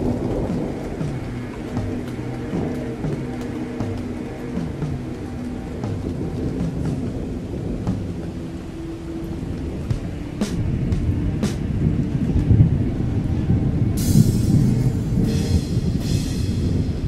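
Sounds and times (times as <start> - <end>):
sharp thunder cracks: 0.0 - 4.0, 13.6 - 17.0
held low musical notes: 0.0 - 17.0
low thunder rumble: 0.0 - 17.0.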